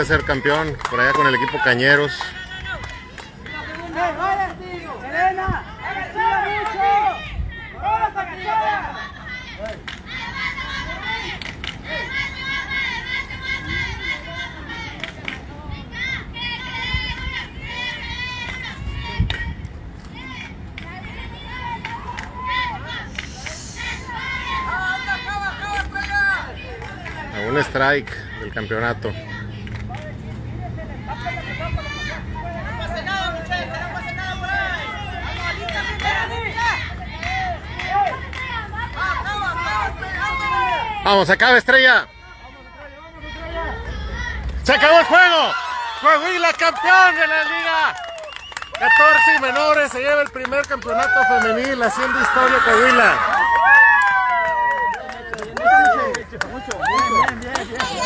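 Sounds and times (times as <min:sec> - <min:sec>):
young voices chanting: 0:05.6 - 0:15.0, 0:20.2 - 0:27.5.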